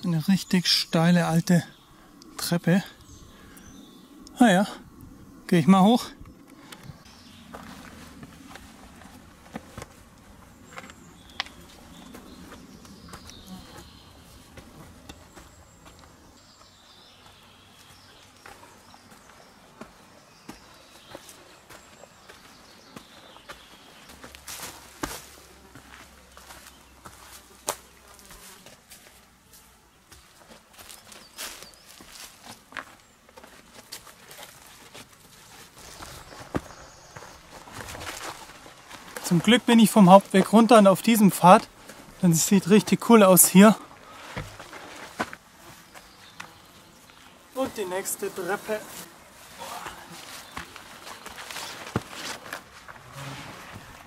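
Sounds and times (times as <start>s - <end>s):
footsteps on stone steps: 6.7s - 48.0s, 49.0s - 53.0s
footsteps on dry leaves: 30.2s - 39.5s, 47.1s - 54.0s.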